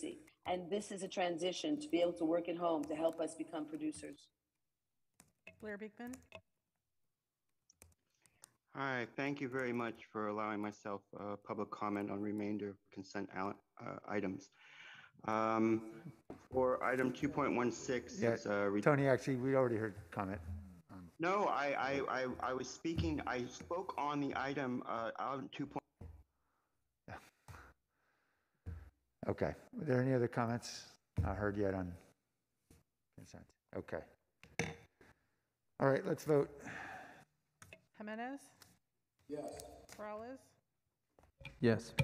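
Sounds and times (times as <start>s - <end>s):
person breathing: 14.5s - 15.2s, 36.6s - 37.3s.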